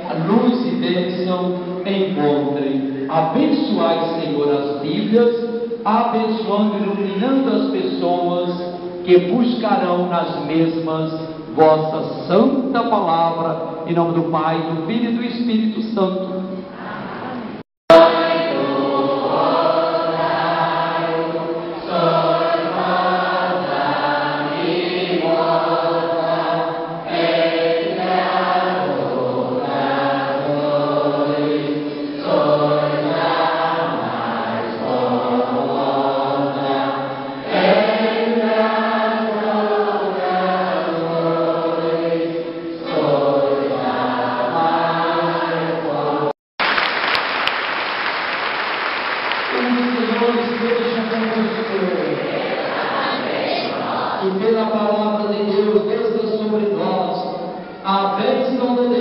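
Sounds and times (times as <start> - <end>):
group singing a hymn: 0.0 - 4.8, 16.8 - 46.3, 49.5 - 55.9.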